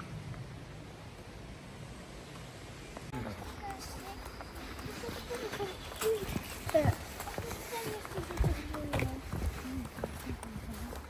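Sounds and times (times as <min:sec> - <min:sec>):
footsteps on dirt path: 0:03.1 - 0:11.0
people talking: 0:03.1 - 0:11.0.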